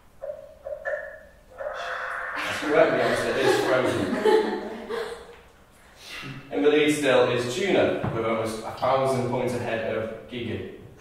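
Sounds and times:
short pitched calls: 0.2 - 2.8.

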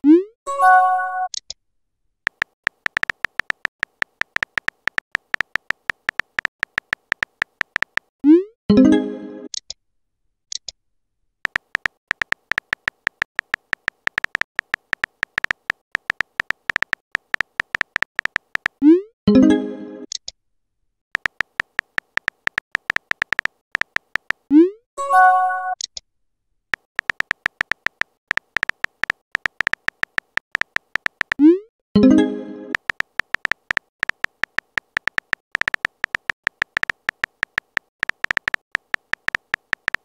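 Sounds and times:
keypress clicks: 2.3 - 8.1, 11.5 - 18.8, 21.2 - 24.5, 26.8 - 31.5, 32.7 - 40.0
phone keyboard taps: 2.3 - 8.1, 11.5 - 18.8, 21.2 - 24.5, 26.8 - 31.4, 32.7 - 40.0.

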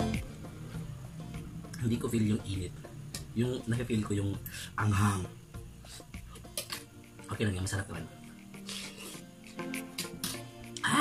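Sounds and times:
background music with steady tones: 0.0 - 11.0
hissy slurping of noodles: 8.6 - 10.5.

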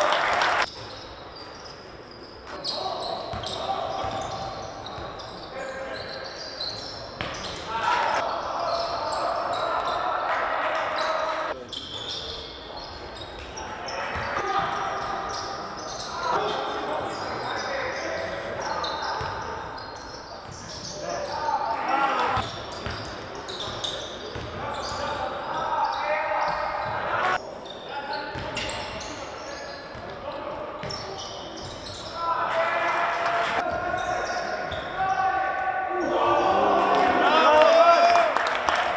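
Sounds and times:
voices calling out: 2.5 - 22.5
basketball bouncing on court: 24.3 - 24.6.

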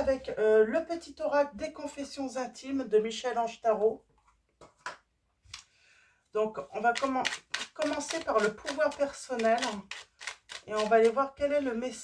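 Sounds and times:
cards being handled: 6.8 - 11.4.

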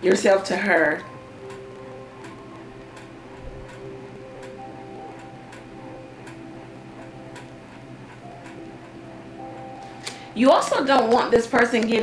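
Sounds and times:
faint ticking clicks: 0.0 - 12.0
soft sustained background music: 0.0 - 12.0.

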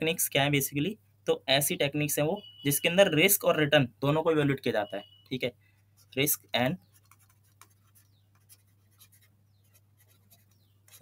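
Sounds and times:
stylus scratching on tablet: 5.9 - 11.0.

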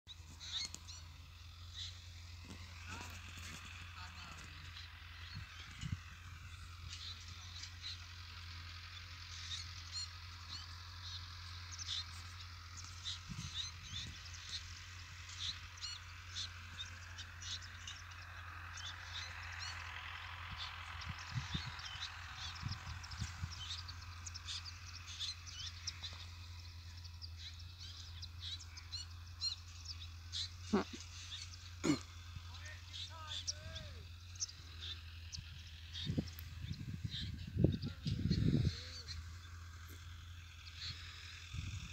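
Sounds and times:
distant bird calls: 0.1 - 41.9
small birds chirping: 0.1 - 41.9.

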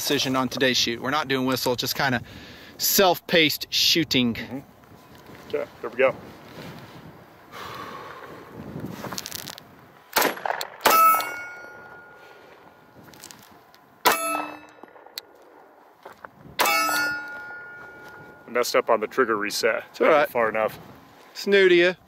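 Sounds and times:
pistol shots: 10.1 - 11.5
steel target ringing: 10.2 - 12.9, 14.0 - 15.1, 16.6 - 18.6.

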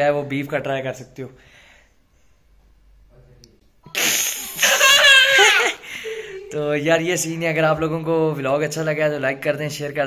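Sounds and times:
girl blowing a raspberry: 3.9 - 5.8
girl laughing: 3.9 - 6.6.

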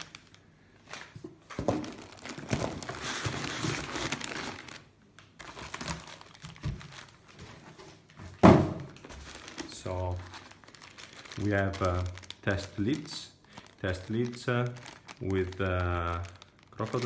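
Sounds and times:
plastic crinkling and rustling: 0.0 - 17.0
loud thunk on table: 8.4 - 8.9.

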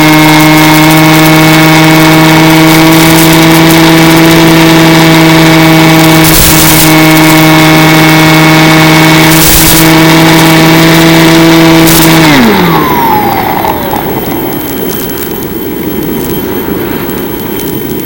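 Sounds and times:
bursts of hiss: 0.0 - 18.0
model plane motor and propeller: 0.0 - 18.0.

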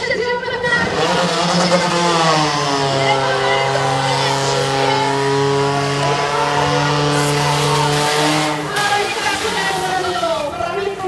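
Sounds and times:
pump engine revving: 0.7 - 11.0.

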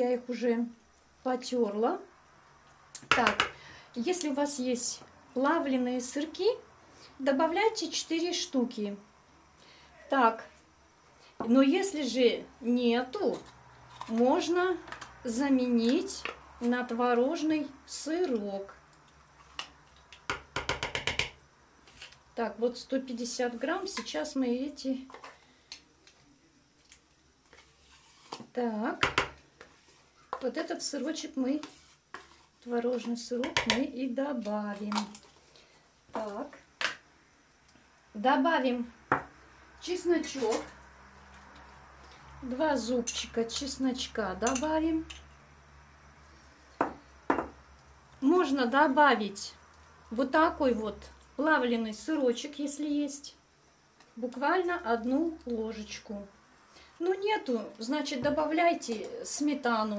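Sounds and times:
metal spoon tapping plastic bowl: 20.3 - 21.4
metal spoon tapping dish: 44.4 - 45.3.

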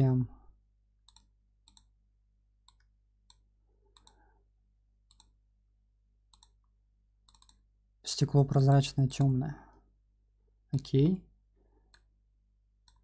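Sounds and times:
computer mouse clicks: 1.0 - 2.0, 2.6 - 4.2, 5.0 - 5.4, 6.3 - 7.7.

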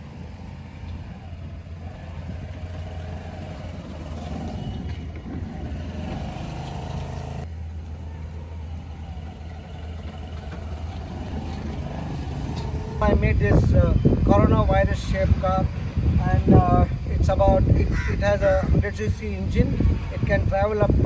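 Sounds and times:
small scooter engine humming: 0.0 - 14.1.

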